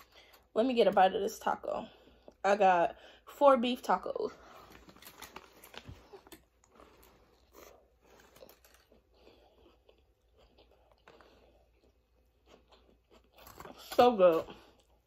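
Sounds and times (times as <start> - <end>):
person chewing food: 4.5 - 15.0.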